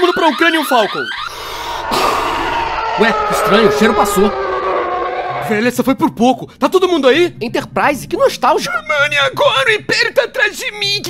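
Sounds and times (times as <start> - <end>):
spaceship engine whoosh: 1.4 - 5.6.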